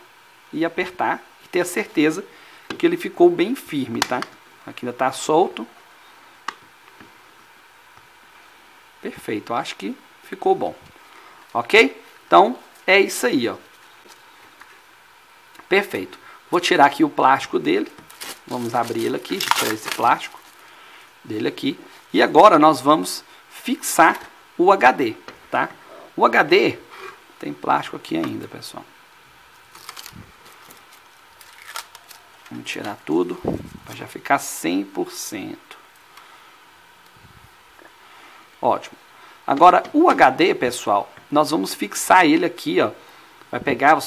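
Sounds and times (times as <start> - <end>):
steady low hiss: 0.0 - 44.0
plastic film peeling crackles: 17.9 - 20.7, 29.5 - 33.0.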